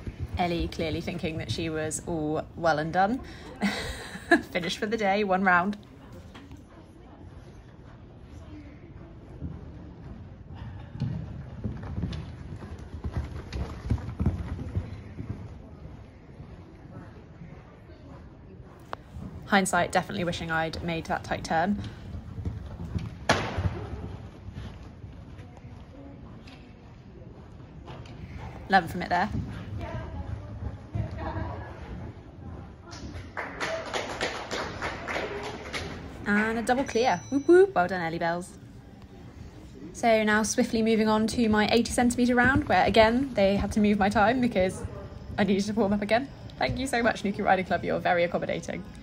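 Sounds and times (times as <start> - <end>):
horse hoofbeats on sand: 9.3 - 15.6, 28.2 - 32.2
people clapping: 33.0 - 36.2.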